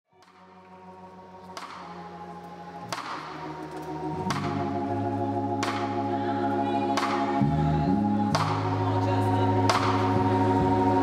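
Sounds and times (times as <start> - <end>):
live soul band music: 0.4 - 11.0.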